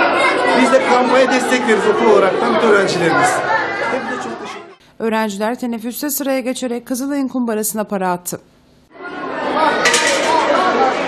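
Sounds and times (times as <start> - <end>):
children chattering: 0.0 - 4.8, 8.9 - 11.0.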